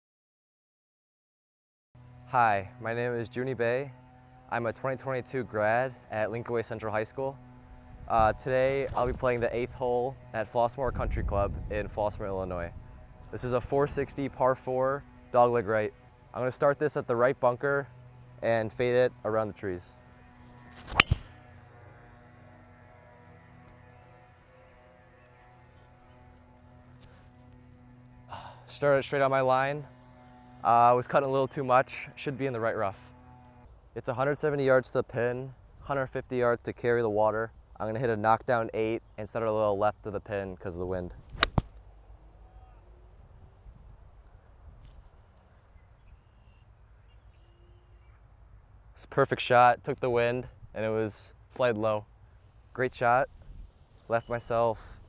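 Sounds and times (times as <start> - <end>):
faint outdoor background: 2.0 - 55.0
golf driver striking ball: 20.9 - 21.3, 41.4 - 41.7.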